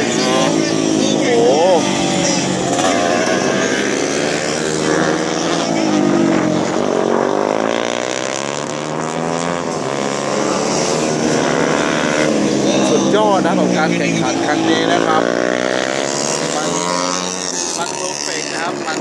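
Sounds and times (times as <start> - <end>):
race motorcycle engines: 0.0 - 19.0.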